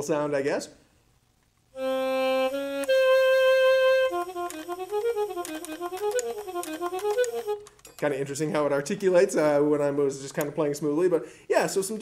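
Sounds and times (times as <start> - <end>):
digital saxophone playing: 1.8 - 7.7.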